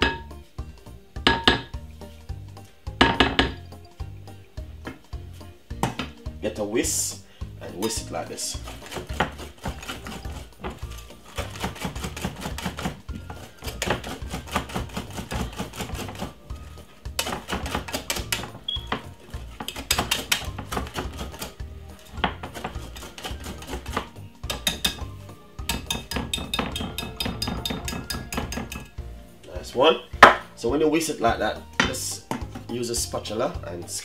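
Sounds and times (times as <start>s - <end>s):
background music: 0.0s - 34.0s
whisk clattering in glass bowl: 25.7s - 28.9s.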